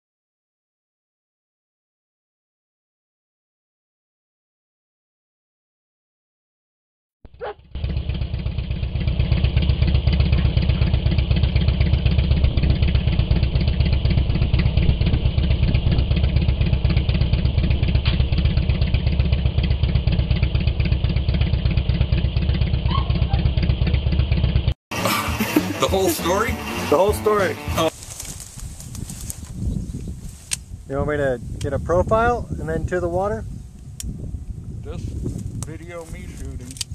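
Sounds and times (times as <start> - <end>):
motorcycle engine idling: 7.3 - 27.0.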